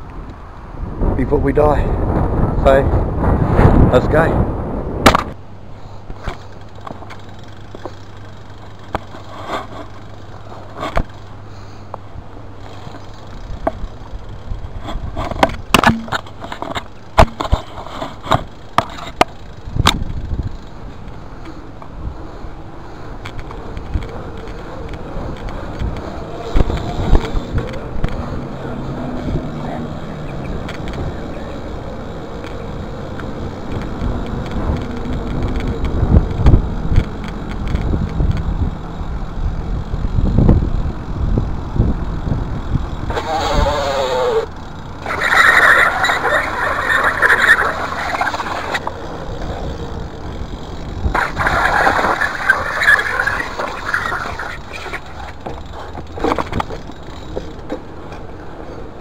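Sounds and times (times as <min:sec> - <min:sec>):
bike knocks and rattles: 0:12.6 - 0:21.9, 0:32.3 - 0:38.8, 0:48.5 - 0:58.9
harsh calling: 0:43.1 - 0:49.3, 0:51.0 - 0:55.5.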